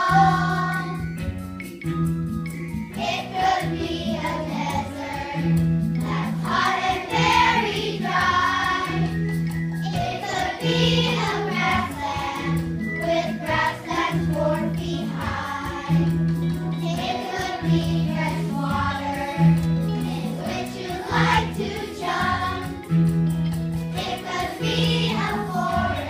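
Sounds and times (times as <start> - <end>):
children singing: 0.0 - 1.0, 3.0 - 9.2, 9.8 - 16.2, 16.8 - 22.8, 24.0 - 26.0
musical accompaniment: 0.0 - 26.0.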